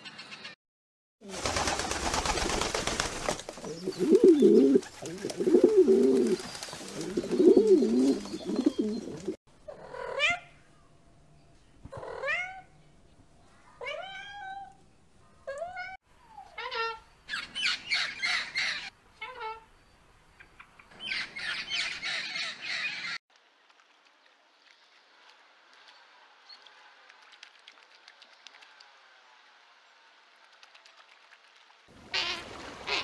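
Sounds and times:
pigeons cooing: 3.6 - 9.4
macaw calls and squawks: 16.4 - 19.6, 21.0 - 23.2.

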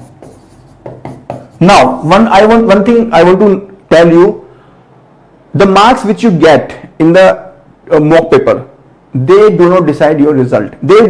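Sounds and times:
pen scratching on a board: 0.0 - 2.1
man talking: 1.6 - 4.4, 5.6 - 11.0.

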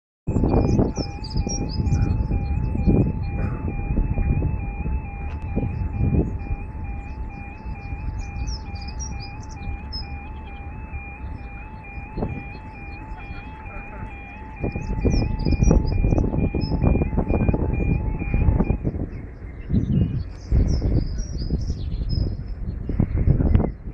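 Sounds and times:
level crossing alarm warbling: 0.3 - 19.0
low rumble: 0.3 - 23.9.

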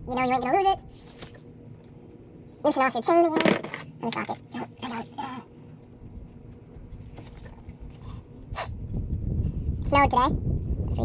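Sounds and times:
low rumbling handling noise: 3.2 - 11.0.

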